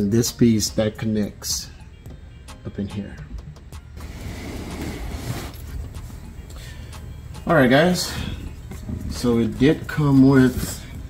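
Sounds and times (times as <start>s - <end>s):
background music with bass line: 0.0s - 11.0s.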